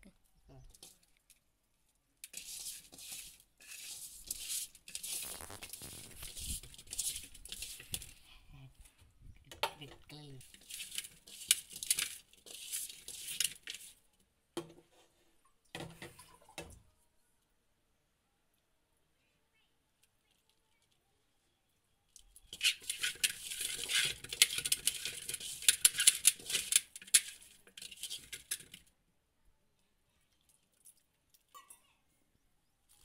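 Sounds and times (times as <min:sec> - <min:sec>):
hands squishing fish in spice coating: 0:02.2 - 0:08.2, 0:10.4 - 0:14.0, 0:22.2 - 0:28.9.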